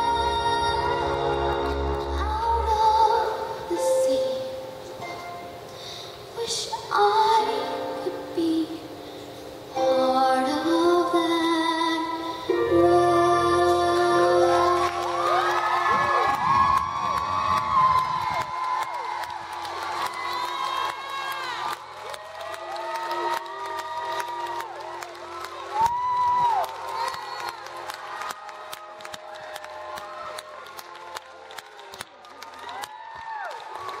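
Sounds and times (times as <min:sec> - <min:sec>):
music accompaniment: 0:00.0 - 0:17.0, 0:19.4 - 0:32.7
audience cheering and whooping: 0:14.3 - 0:34.0
scattered clapping: 0:14.8 - 0:34.0.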